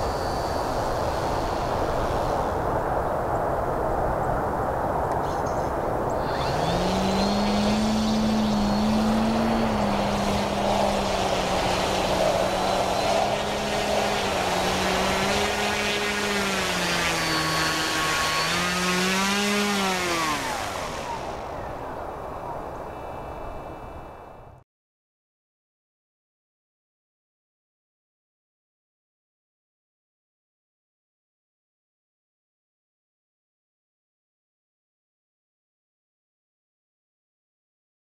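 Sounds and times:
electric motor and propeller whine: 0.0s - 3.2s, 5.5s - 24.6s
steady rushing noise: 0.0s - 24.1s.

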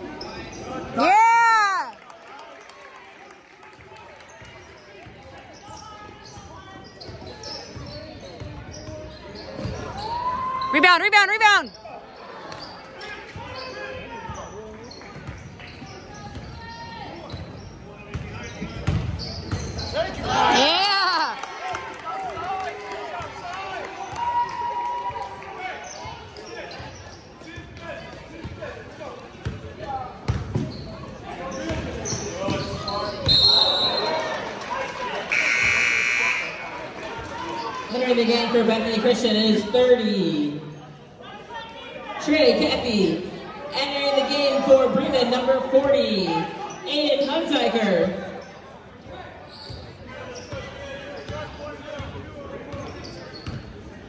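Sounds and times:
sneakers squealing on floor: 0.0s - 1.1s, 4.3s - 11.0s, 11.6s - 20.3s, 25.8s - 28.2s, 30.3s - 34.1s, 35.3s - 36.6s, 47.9s - 53.9s
spectators talking and calling: 4.1s - 54.0s
basketball bouncing on court: 6.3s - 10.0s, 17.3s - 19.9s, 30.2s - 30.8s
short whistle: 35.3s - 36.6s.

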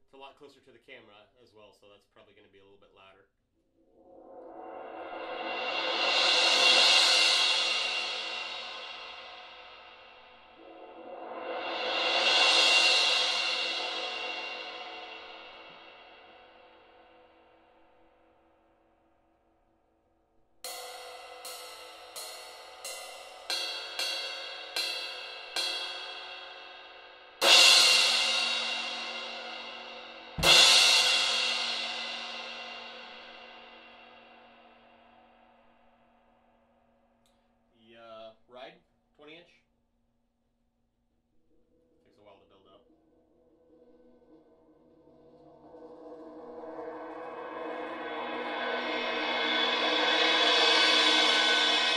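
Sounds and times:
cymbal mallet rolls: 4.1s - 17.3s, 20.7s - 35.2s, 42.0s - 51.9s
cymbal crash hits: 4.1s - 17.7s, 20.7s - 35.6s, 45.0s - 51.9s
cymbal stick strokes: 4.3s - 16.9s, 20.7s - 35.1s
bass drum thump: 28.8s - 33.4s.

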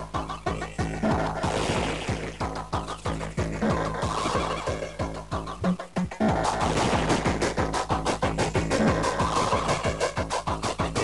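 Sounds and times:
hardcore techno from vinyl record: 0.0s - 11.0s.

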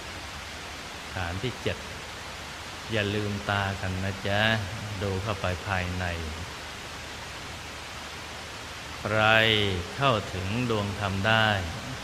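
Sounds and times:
steady hiss: 0.0s - 12.0s
man speaking slowly: 1.1s - 2.0s, 2.9s - 6.5s, 9.0s - 12.0s.

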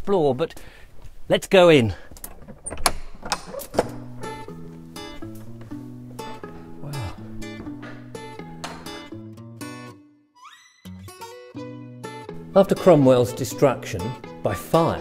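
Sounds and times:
door latch clicks and knocks: 2.2s - 4.1s, 8.6s - 9.0s
acoustic guitar picking: 3.9s - 10.0s, 10.9s - 15.0s.

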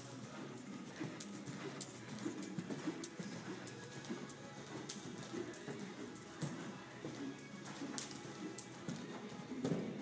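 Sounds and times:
horse hoofbeats on dirt: 0.0s - 10.0s.

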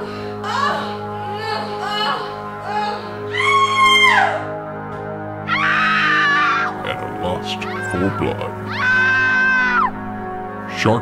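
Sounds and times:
horror music sustained tones: 0.0s - 11.0s
high-pitched human scream: 3.3s - 4.5s, 5.5s - 6.8s, 7.6s - 9.9s.

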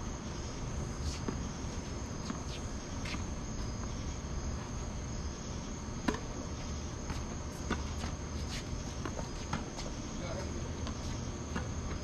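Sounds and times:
crickets chirring: 0.0s - 12.0s
tennis ball hits and bounces: 6.0s - 6.4s.

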